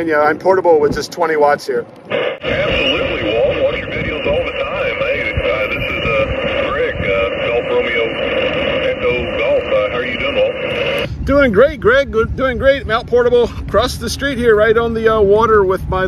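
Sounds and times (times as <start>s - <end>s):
radio band noise: 2.0s - 11.1s
thin radio voice from speaker: 2.1s - 11.1s.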